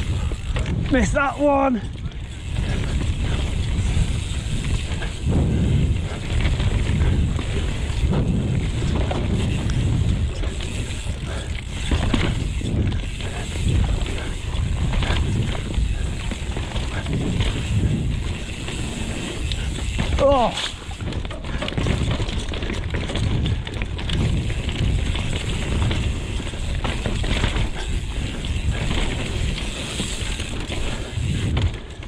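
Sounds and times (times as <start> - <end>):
bike frame rattling and knocking: 0.0 - 32.0
tyres rumbling over dirt: 0.0 - 32.0
wind buffeting microphone: 0.0 - 32.0.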